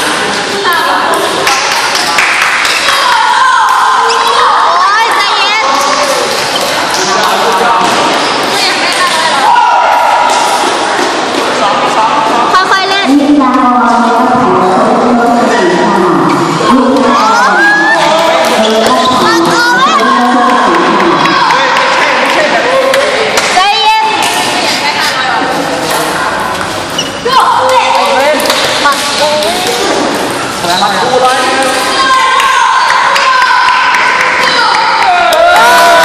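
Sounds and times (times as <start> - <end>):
children shouting and chattering: 0.0 - 36.0
children shouting and cheering: 0.7 - 6.2, 16.7 - 24.1, 31.5 - 36.0.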